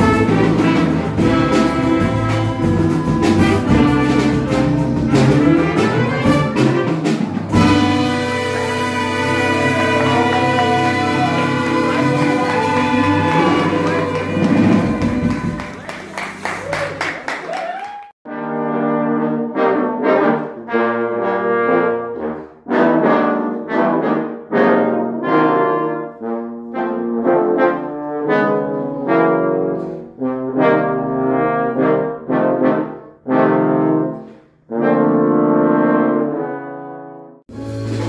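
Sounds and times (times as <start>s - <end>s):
trombones playing in harmony: 0.0s - 16.4s, 18.3s - 38.0s.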